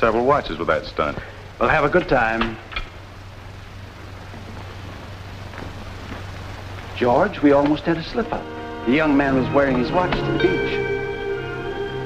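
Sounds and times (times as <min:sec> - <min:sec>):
film soundtrack hiss and hum: 0:00.0 - 0:12.0.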